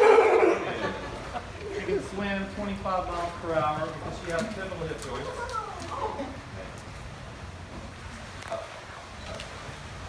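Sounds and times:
flippers slapping on wet concrete: 3.9s - 6.1s.

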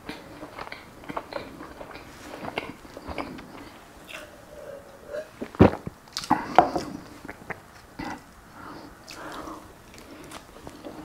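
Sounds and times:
person swallowing: 0.8s - 8.3s.

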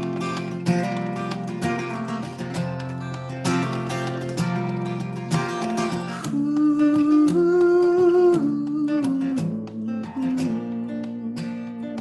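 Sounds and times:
acoustic guitar strumming: 0.0s - 12.0s
man singing: 6.2s - 12.0s.

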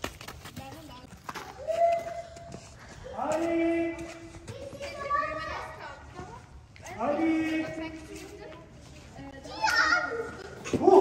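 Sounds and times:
faint footsteps on ground: 0.0s - 11.0s.

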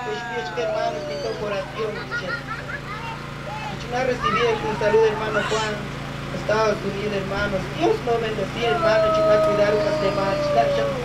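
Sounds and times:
steady low hum: 0.0s - 11.0s
person speaking: 7.7s - 11.0s.

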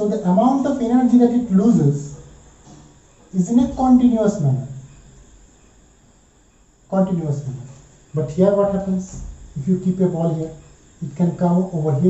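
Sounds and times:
man speaking: 0.0s - 2.3s, 3.3s - 4.9s, 6.9s - 12.0s
faint background noise: 0.0s - 12.0s
steady high-pitched tone: 0.0s - 12.0s.

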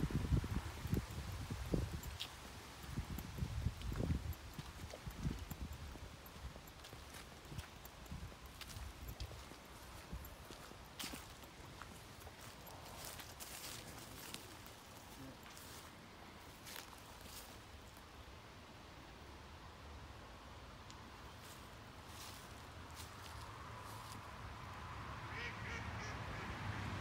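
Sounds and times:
footsteps on grass: 0.1s - 15.9s, 16.5s - 17.6s.

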